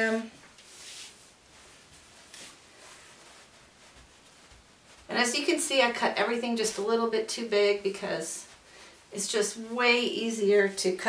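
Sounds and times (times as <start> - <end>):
fabric rustling: 0.0 - 11.0
fabric swish: 0.1 - 7.0.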